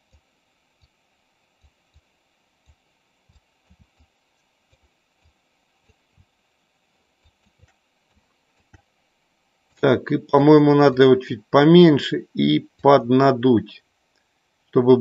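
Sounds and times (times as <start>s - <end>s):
faint background hiss: 0.0s - 15.0s
computer mouse clicks: 1.6s - 6.3s, 7.2s - 8.9s
man speaking: 9.8s - 13.8s, 14.8s - 15.0s.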